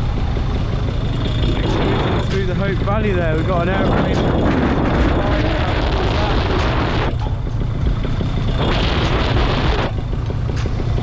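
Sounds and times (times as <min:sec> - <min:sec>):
wind rushing over microphone: 0:00.0 - 0:10.5
paramotor engine drone: 0:00.0 - 0:11.0.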